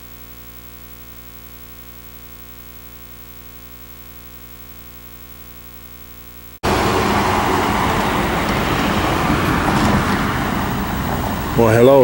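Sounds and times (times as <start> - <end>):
faint electronic hum: 0.0 - 6.6
road traffic noise: 6.6 - 12.0.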